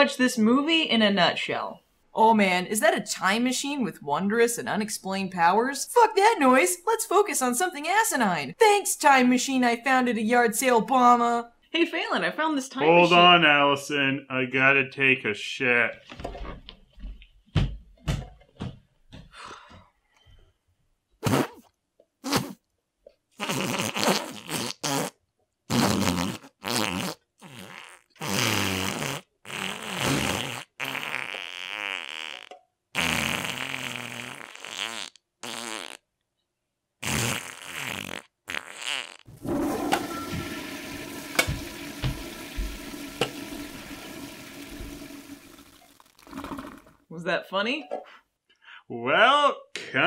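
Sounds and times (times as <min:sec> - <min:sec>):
fart noises: 0:21.2 - 0:22.6, 0:23.4 - 0:36.1, 0:37.0 - 0:47.0
toilet flushing: 0:39.3 - 0:47.0.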